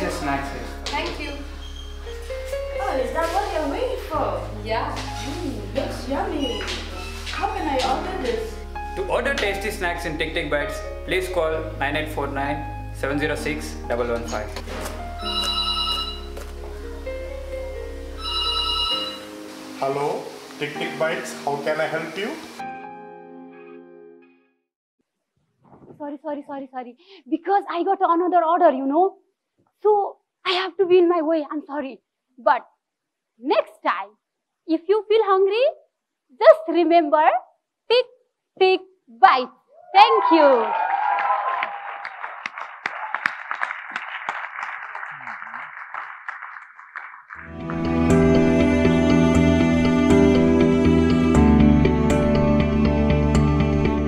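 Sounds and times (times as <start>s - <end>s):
background music: 0.0s - 24.6s, 47.4s - 54.0s
telephone ringing: 15.2s - 16.4s, 18.2s - 19.4s
people cheering: 39.8s - 46.4s
audience applauding: 40.1s - 48.5s.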